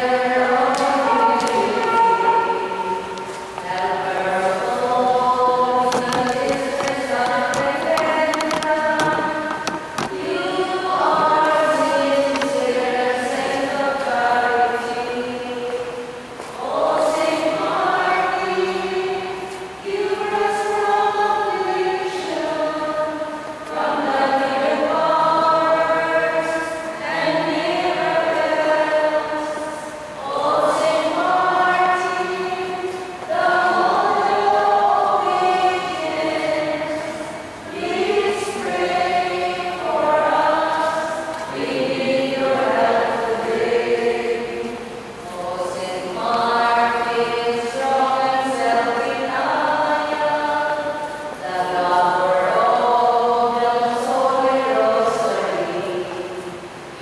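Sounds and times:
group singing a slow hymn: 0.0s - 57.0s.

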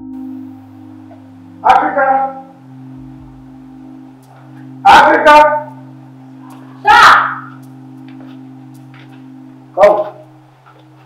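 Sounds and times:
low synthesizer tones: 0.0s - 11.0s.

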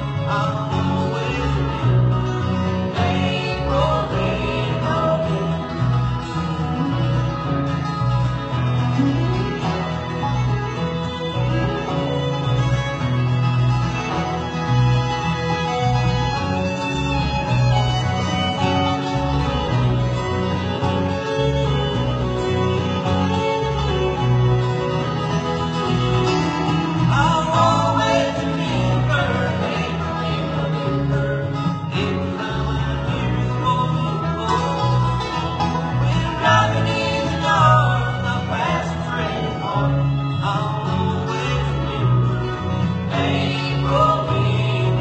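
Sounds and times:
banjo: 0.0s - 45.0s
bluegrass band playing: 0.0s - 45.0s
fiddle: 0.0s - 45.0s.

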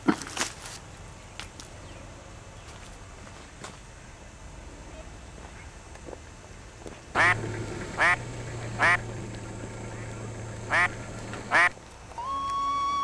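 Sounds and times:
low steady hum: 3.9s - 13.0s
duck quacking: 7.2s - 9.1s, 9.9s - 11.7s.

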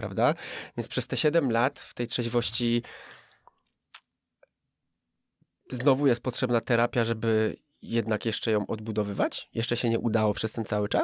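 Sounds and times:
small mouth noises: 3.3s - 4.1s.

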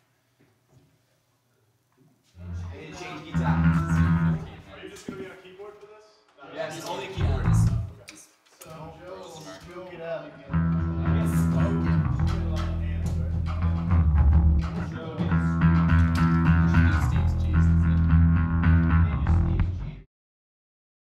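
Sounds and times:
person speaking: 2.4s - 5.4s, 6.7s - 9.9s, 10.5s - 13.7s
blues-rock band: 10.5s - 19.5s.

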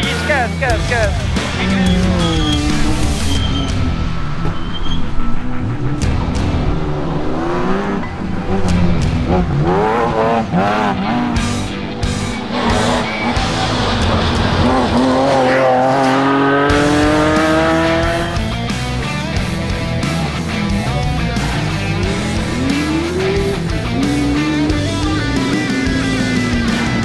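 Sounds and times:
music: 0.0s - 27.0s
rally car engine revving: 0.0s - 27.0s.

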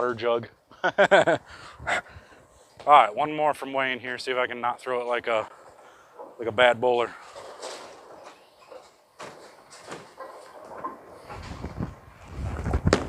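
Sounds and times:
faint clatter: 7.0s - 13.0s
bowling ball rumble: 9.6s - 13.0s.

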